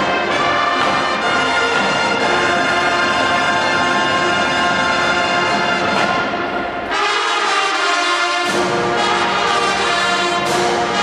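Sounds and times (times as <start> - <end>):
brass sustained chords: 0.0 - 11.0
marching band playing: 0.0 - 11.0.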